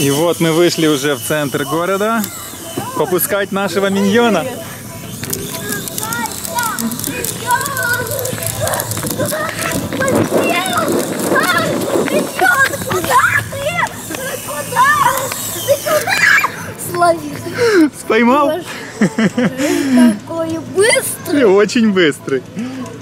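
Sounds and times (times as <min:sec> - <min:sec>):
people talking: 0:00.0 - 0:23.0
young child shouting excitedly: 0:05.6 - 0:17.4.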